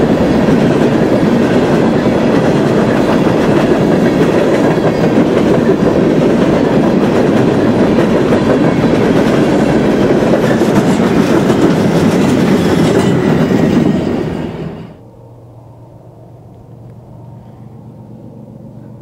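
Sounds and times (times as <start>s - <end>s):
train wheels rumbling on rail: 0.0s - 15.1s.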